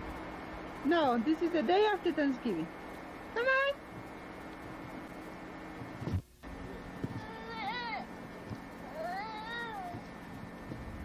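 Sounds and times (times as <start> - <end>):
young child whining: 6.6 - 8.1, 8.8 - 10.1.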